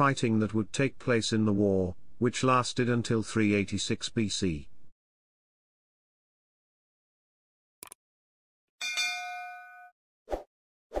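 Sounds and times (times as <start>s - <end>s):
bell-like ding: 8.8s - 10.0s.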